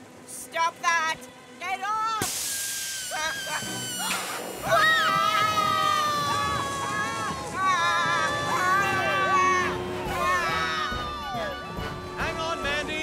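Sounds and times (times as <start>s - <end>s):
background music: 0.0s - 13.0s
short hiss: 2.2s - 4.7s
children screaming: 2.6s - 12.7s.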